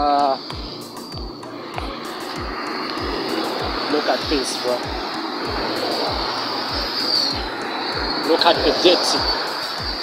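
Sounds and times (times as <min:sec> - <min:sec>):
outdoor wind: 0:00.0 - 0:10.0
street noise: 0:00.0 - 0:10.0
footstep thumps: 0:00.6 - 0:03.8.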